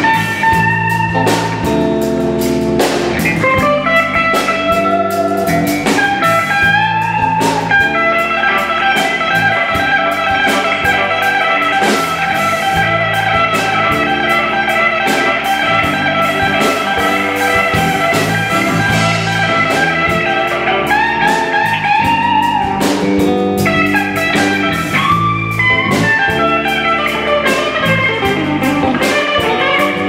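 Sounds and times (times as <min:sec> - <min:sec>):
blues band playing: 0:00.0 - 0:30.0
lead guitar high notes: 0:00.0 - 0:30.0.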